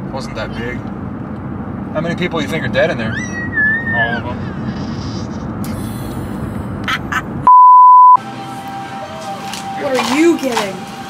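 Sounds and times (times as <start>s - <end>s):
car road rumble: 0.0s - 7.5s
censor bleep tone: 7.5s - 8.2s.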